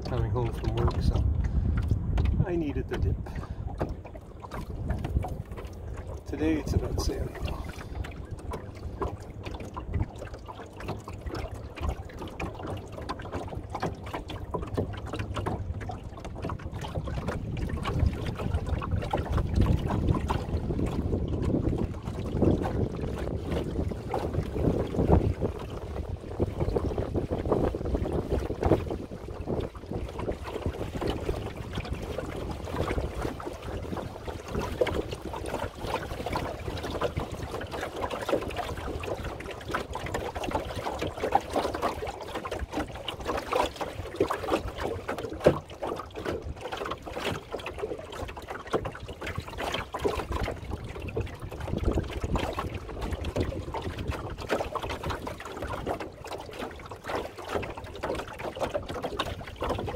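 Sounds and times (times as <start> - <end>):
wind buffeting microphone: 0.0 - 47.5, 48.7 - 56.4
water splashing along a hull: 0.0 - 59.9.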